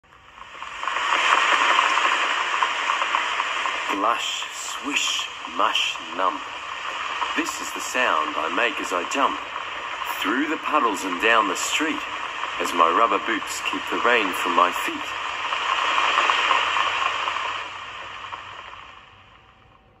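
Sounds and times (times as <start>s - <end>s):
steady hiss: 0.0s - 20.0s.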